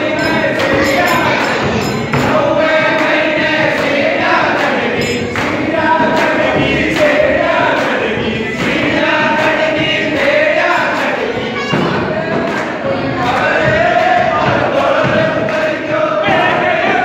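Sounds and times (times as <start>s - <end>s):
frame drum beating: 0.0s - 17.0s
men singing in unison: 0.0s - 17.0s.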